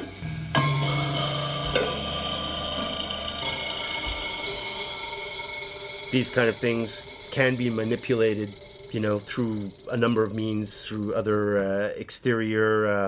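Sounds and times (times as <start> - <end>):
thumb piano plucks: 0.6 - 11.7.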